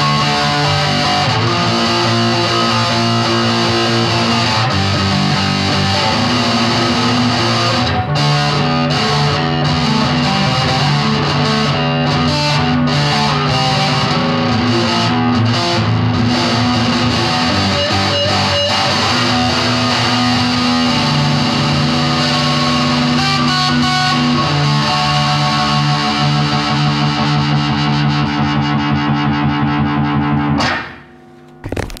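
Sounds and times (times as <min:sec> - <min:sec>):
distorted electric guitar chords: 0:00.0 - 0:32.0.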